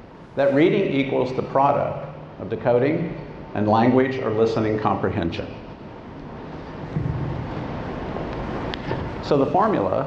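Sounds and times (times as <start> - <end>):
low rumbling on microphone: 6.4 - 9.2.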